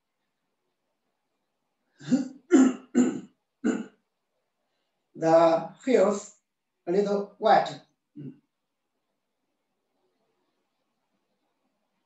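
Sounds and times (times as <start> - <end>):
man coughing: 2.0 - 3.8.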